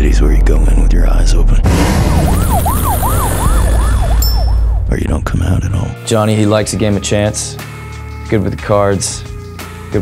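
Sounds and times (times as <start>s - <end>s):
deep low rumble: 0.0s - 5.8s
emergency vehicle siren: 1.8s - 4.9s.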